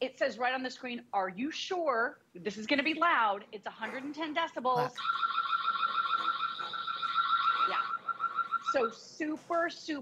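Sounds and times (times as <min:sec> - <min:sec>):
warbling electronic siren: 0:05.0 - 0:09.0.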